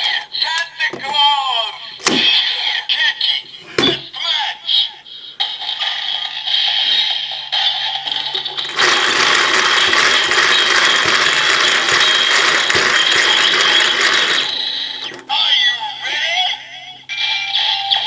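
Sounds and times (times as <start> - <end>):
quiet steady toy sound: 0.0 - 18.0
toy ratcheting gear sound: 5.6 - 15.7.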